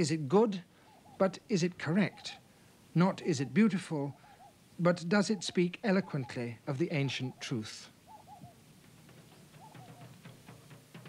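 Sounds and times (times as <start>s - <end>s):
faint bird chirping: 0.0s - 11.0s.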